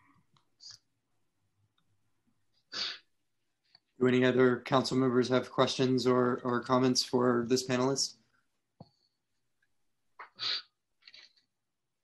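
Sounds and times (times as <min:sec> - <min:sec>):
person sharp breath burst: 0:02.7 - 0:03.0, 0:10.3 - 0:10.7.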